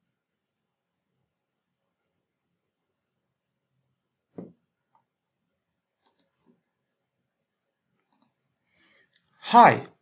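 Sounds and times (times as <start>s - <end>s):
faint computer mouse clicks: 6.0s - 6.4s, 8.1s - 8.4s.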